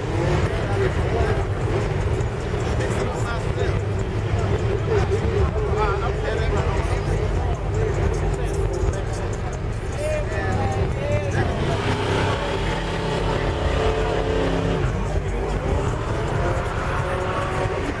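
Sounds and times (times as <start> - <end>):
car engine revving: 0.0 - 18.0
crowd chatter: 0.0 - 18.0
deep bass: 0.0 - 18.0.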